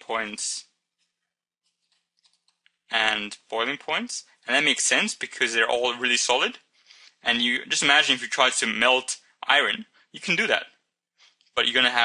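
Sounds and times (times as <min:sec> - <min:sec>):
person speaking: 0:00.0 - 0:10.8, 0:11.4 - 0:12.0
stylus clicks and taps on tablet: 0:01.0 - 0:02.9.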